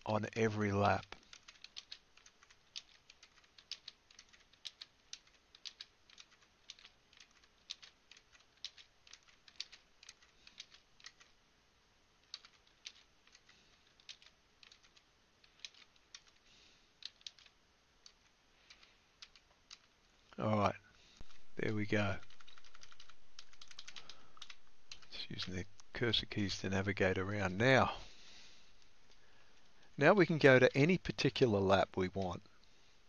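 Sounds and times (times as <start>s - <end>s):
computer keyboard clicks: 1.0s - 11.3s, 12.2s - 16.4s, 17.0s - 19.9s, 22.2s - 25.5s.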